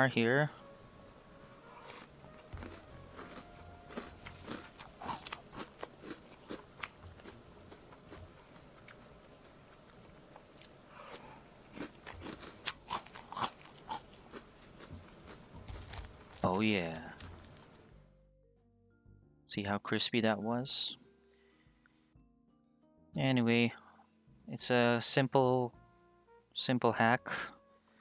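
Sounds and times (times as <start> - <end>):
chewing crunchy cereal: 1.8 - 17.5.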